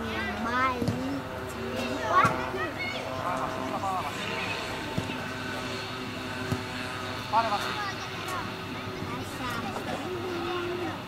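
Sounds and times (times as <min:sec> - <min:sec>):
steady droning hum: 0:00.0 - 0:11.0.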